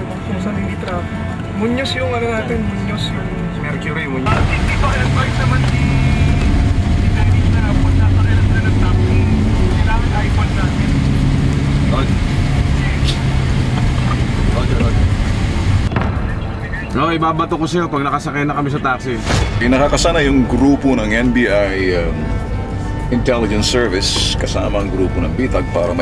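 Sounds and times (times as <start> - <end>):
car engine rumble: 0.0 - 26.0
indistinct voices: 0.0 - 26.0
road noise hiss: 4.0 - 16.9.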